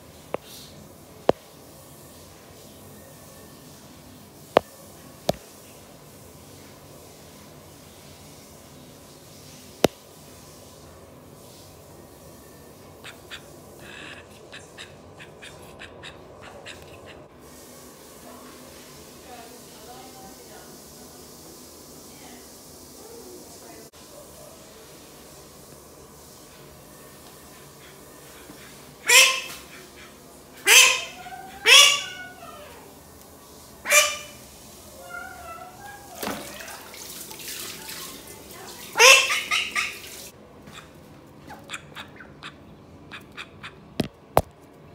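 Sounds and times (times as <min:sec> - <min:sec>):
duck quacking loudly: 0:29.0 - 0:29.7, 0:30.6 - 0:32.4, 0:33.9 - 0:34.4
duck quacking: 0:29.0 - 0:32.4, 0:41.5 - 0:43.9.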